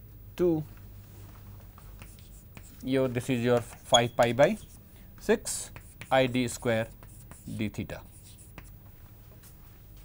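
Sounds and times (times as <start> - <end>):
chalk scratching on chalkboard: 1.8 - 8.8
chalk tapping: 1.8 - 8.8.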